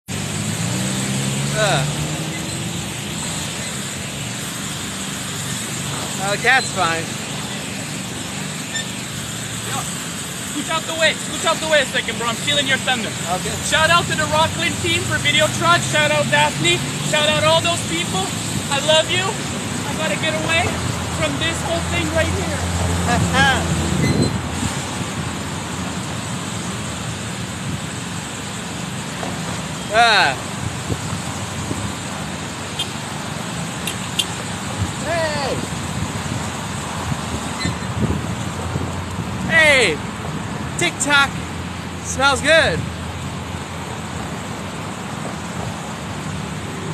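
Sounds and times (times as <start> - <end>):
cars on busy road: 0.0 - 46.9.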